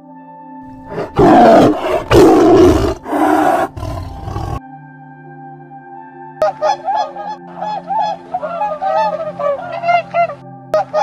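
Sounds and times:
tiger roaring: 0.8s - 4.6s.

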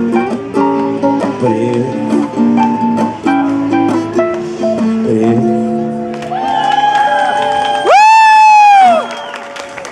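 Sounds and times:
acoustic guitar and keyboard chord: 0.0s - 6.1s
person shouting woo: 6.3s - 9.4s.

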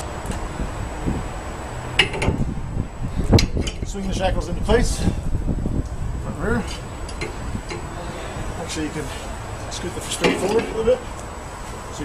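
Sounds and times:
metal clinks and knocks: 2.0s - 2.4s, 3.4s - 4.0s.

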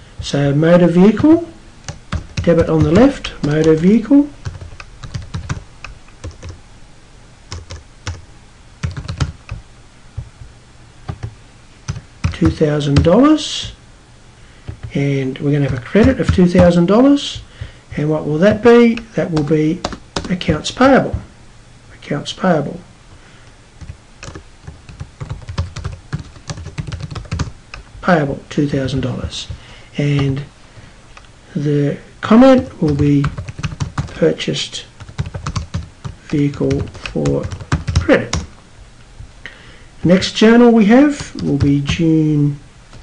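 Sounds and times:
computer keyboard typing: 1.2s - 3.8s, 4.4s - 6.6s, 7.5s - 8.2s, 8.8s - 9.6s, 11.1s - 11.3s, 11.9s - 13.8s, 15.6s - 17.5s, 18.9s - 20.6s, 23.8s - 27.9s, 30.2s - 30.4s, 32.6s - 34.2s, 35.0s - 38.5s.

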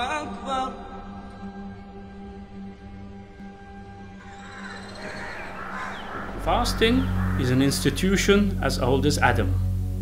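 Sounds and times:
soft background music: 0.0s - 10.0s
birds calling: 4.2s - 9.9s.

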